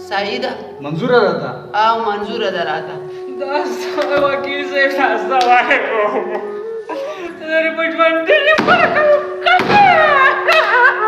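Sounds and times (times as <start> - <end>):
held musical drone: 0.0 - 11.0
man wailing: 5.4 - 11.0.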